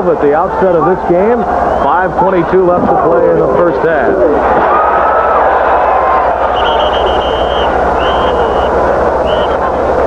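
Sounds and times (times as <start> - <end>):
stadium crowd noise: 0.0 - 10.0
referee's whistle blowing: 1.7 - 2.1, 6.4 - 9.6.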